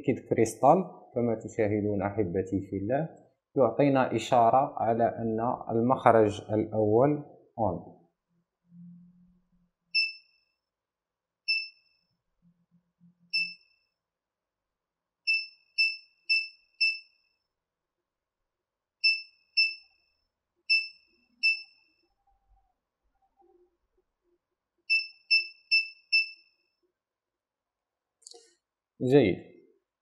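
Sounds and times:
electronic buzzer beeping: 0:10.0 - 0:10.4, 0:11.5 - 0:11.9, 0:13.3 - 0:13.8, 0:15.3 - 0:17.2, 0:19.0 - 0:20.0, 0:20.7 - 0:22.0, 0:24.9 - 0:26.6.

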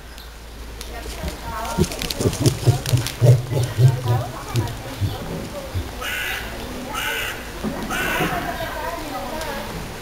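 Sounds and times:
cassowary deep pulsed calls: 0:01.4 - 0:06.4.

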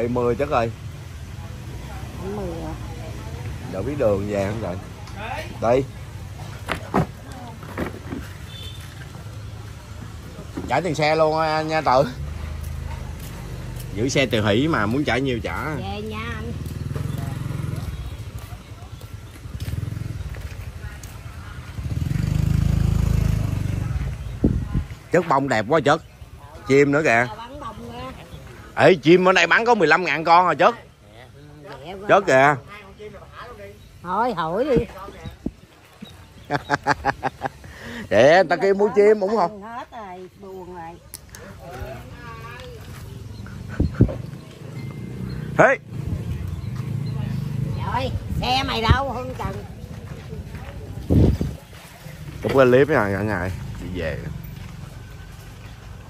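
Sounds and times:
small motorbike engines passing: 0:00.0 - 0:56.0
street background noise: 0:00.0 - 0:56.0.

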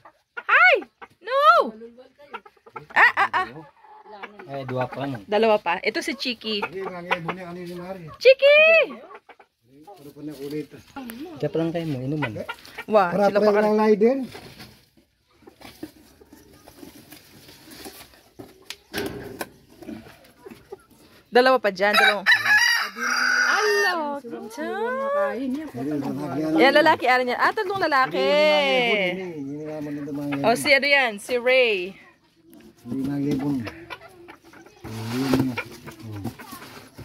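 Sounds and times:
chickens clucking: 0:00.0 - 0:37.0.

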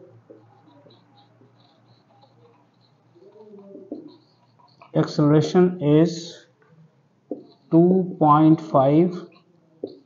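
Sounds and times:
pigeon cooing: 0:00.0 - 0:04.8.

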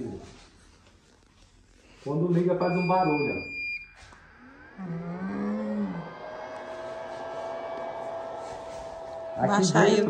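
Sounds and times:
respirator blower motor whirring: 0:03.6 - 0:10.0.

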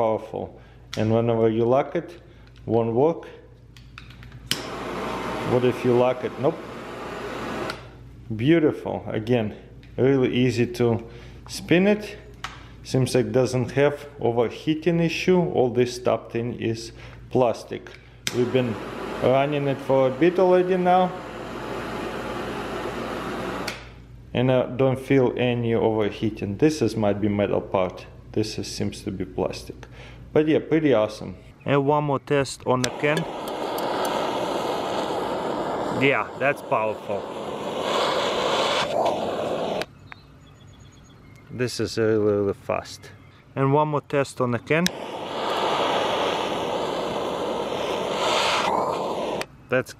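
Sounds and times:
torch lighter hissing: 0:04.4 - 0:08.0, 0:18.2 - 0:24.0, 0:32.7 - 0:39.9, 0:44.8 - 0:49.6
lighter click: 0:04.5 - 0:04.8, 0:07.6 - 0:07.9, 0:18.2 - 0:18.4, 0:23.6 - 0:24.0, 0:32.8 - 0:35.9.

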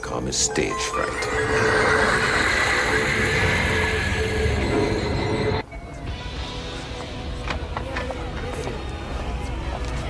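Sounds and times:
long harsh shriek: 0:00.9 - 0:05.6.

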